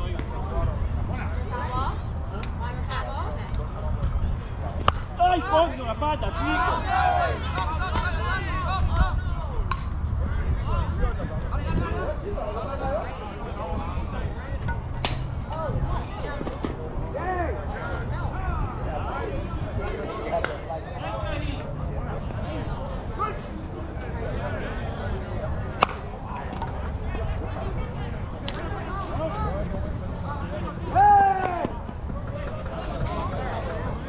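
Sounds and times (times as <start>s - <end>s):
people shouting and chattering: 0.0s - 34.0s
bat hitting ball crack: 4.8s - 5.1s, 15.0s - 15.4s, 25.7s - 26.0s.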